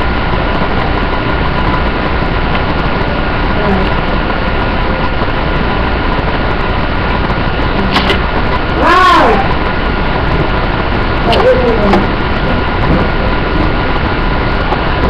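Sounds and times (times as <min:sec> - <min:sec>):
faint steady hum: 0:00.0 - 0:15.0
loud background hiss: 0:00.0 - 0:15.0.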